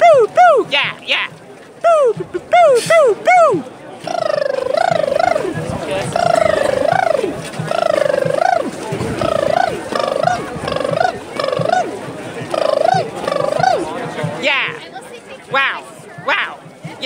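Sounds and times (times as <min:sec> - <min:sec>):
person hooting drawn-out calls: 0:00.0 - 0:00.7, 0:01.8 - 0:11.9, 0:12.5 - 0:13.9
crowd noise: 0:00.0 - 0:17.0.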